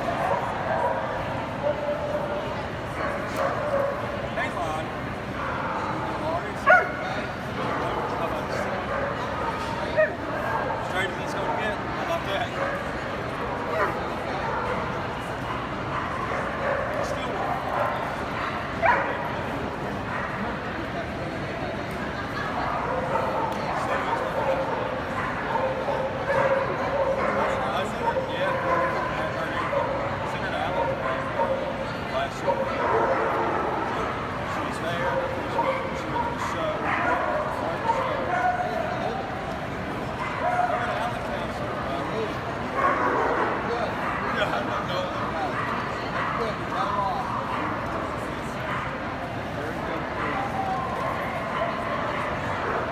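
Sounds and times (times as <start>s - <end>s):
crowd chatter: 0.0s - 52.9s
dogs barking and yipping: 5.3s - 7.0s, 13.6s - 19.4s, 22.7s - 49.2s, 49.9s - 52.9s.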